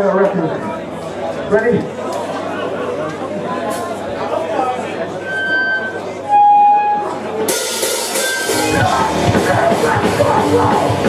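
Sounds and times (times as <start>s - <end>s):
crowd chatter: 0.0s - 11.0s
punk band playing: 6.3s - 11.0s.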